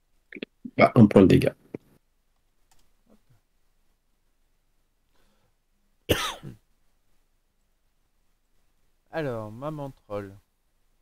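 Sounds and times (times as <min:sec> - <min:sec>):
person coughing: 0:06.1 - 0:06.6.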